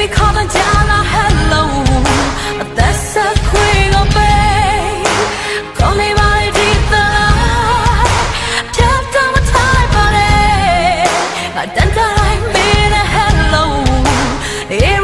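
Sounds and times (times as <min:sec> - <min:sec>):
keyboard: 0:00.0 - 0:15.0
steady drum beat: 0:00.0 - 0:15.0
woman singing pop ballad: 0:00.0 - 0:15.0.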